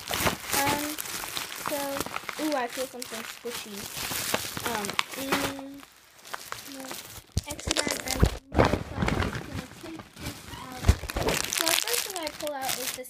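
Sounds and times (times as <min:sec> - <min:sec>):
plastic bag rustling and crinkling: 0:00.0 - 0:13.0.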